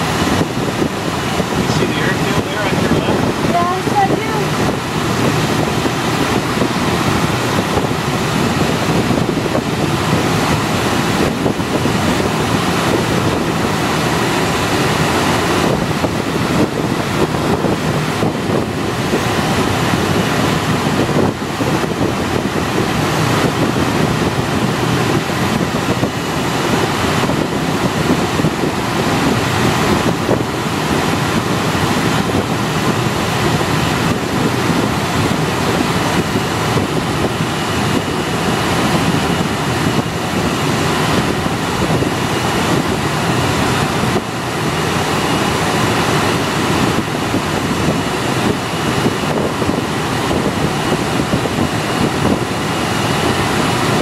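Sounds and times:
wind noise rushing past cockpit: 0.0 - 54.0.

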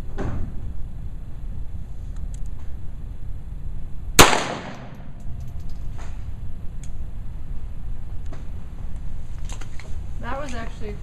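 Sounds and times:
pistol shot with echo: 4.2 - 5.1.

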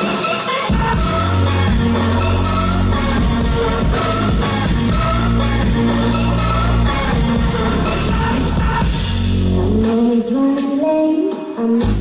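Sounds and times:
drum kit: 0.0 - 12.0
synthesizers: 0.0 - 12.0
heavy bass line: 0.7 - 10.0.

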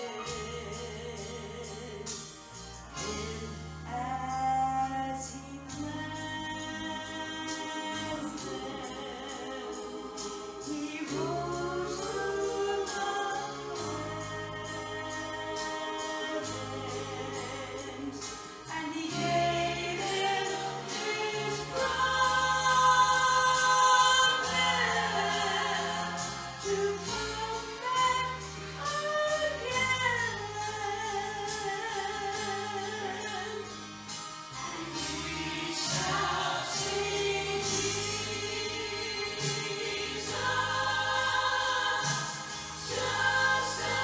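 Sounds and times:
instrumental accompaniment: 0.0 - 44.0
woman singing gospel with vibrato: 0.0 - 44.0.

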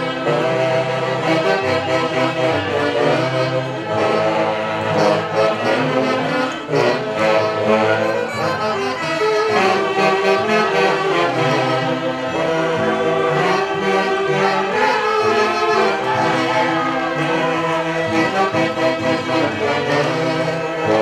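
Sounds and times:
saxophones playing melody: 0.0 - 21.0
violins playing: 0.0 - 21.0.

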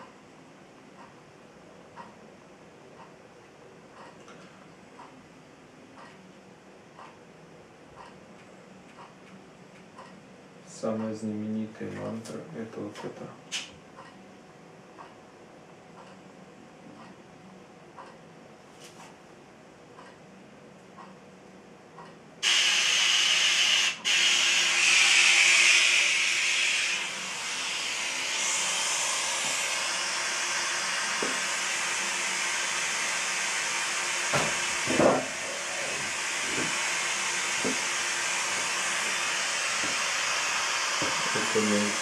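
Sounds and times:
loud steady hiss: 22.4 - 42.0.

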